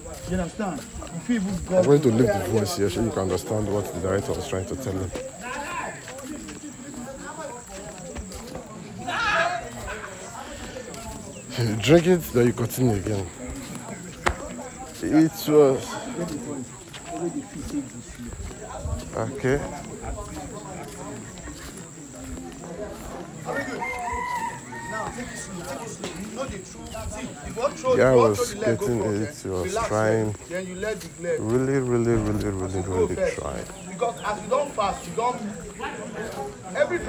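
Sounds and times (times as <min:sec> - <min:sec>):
man talking: 0:00.0 - 0:06.3, 0:10.3 - 0:21.2, 0:25.0 - 0:37.0
low chatter of voices: 0:00.0 - 0:37.0
rooster crowing: 0:23.5 - 0:25.8.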